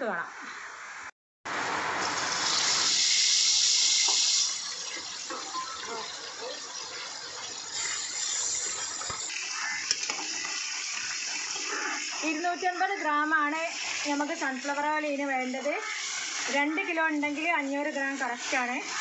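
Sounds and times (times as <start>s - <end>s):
chicken sizzling in hot oil: 1.5s - 19.0s
spatula turning food: 3.9s - 19.0s.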